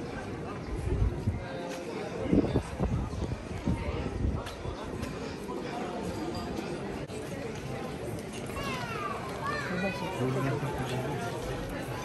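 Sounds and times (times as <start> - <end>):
street crowd chatter: 0.0 - 12.0.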